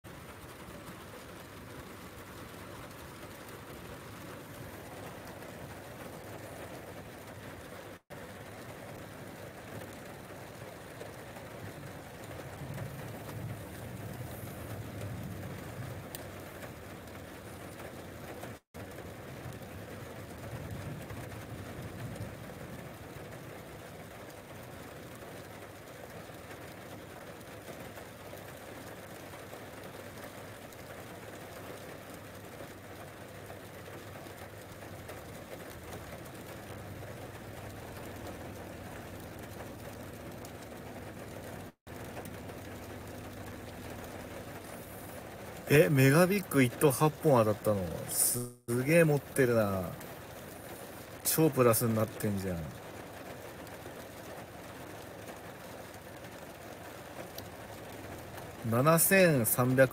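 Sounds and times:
distant thunder rumbling: 12.4s - 16.2s
steady hiss: 43.8s - 52.7s.

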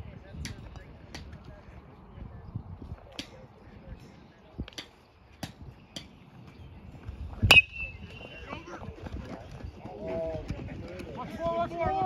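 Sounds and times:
people shouting and yelling: 9.9s - 12.0s.

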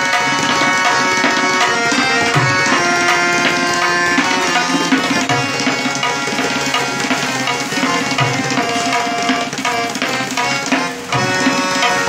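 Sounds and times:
tabla drumming: 0.0s - 12.0s.

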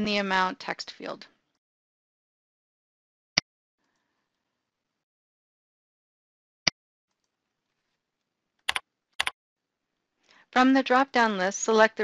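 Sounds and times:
keyboard keystrokes: 8.7s - 9.3s.

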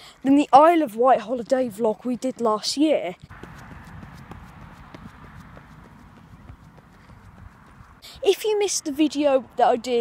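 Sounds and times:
running footsteps on tarmac: 3.2s - 8.1s.

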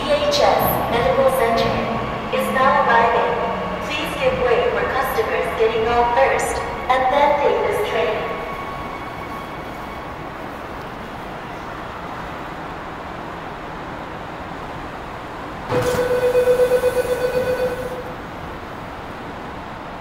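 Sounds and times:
train doors opening with a rush: 0.0s - 6.8s, 7.6s - 19.9s
subway train humming: 0.0s - 20.0s
pulsing electronic door tone: 15.7s - 18.2s.

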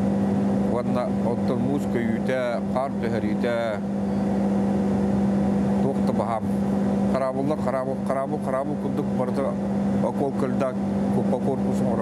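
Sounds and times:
machinery humming: 0.0s - 12.0s.

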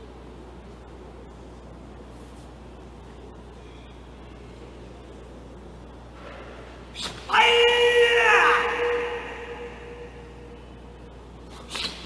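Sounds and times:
person shouting kiai: 7.0s - 10.5s.

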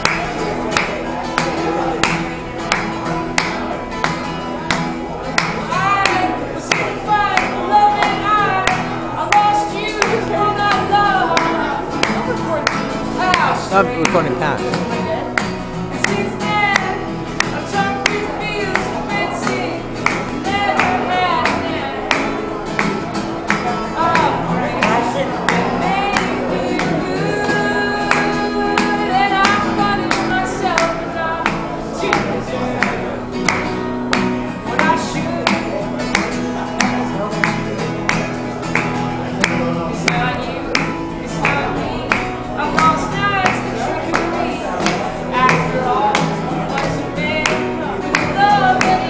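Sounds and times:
acoustic guitar strumming: 0.0s - 49.0s
hand claps: 0.0s - 49.0s
man singing: 13.2s - 15.3s, 23.7s - 33.1s, 39.5s - 49.0s.

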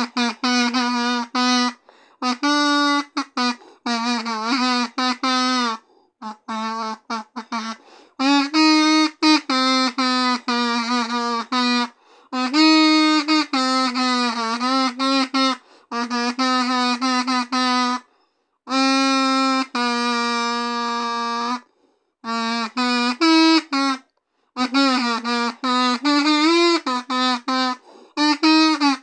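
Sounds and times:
kazoo buzzing melody: 0.0s - 18.1s, 18.7s - 29.0s.

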